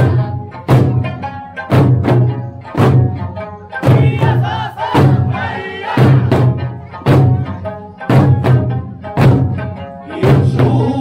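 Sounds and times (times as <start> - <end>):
folk song: 0.0 - 11.0
performers singing: 3.8 - 6.6, 10.0 - 11.0
barrel drums struck: 3.8 - 10.9.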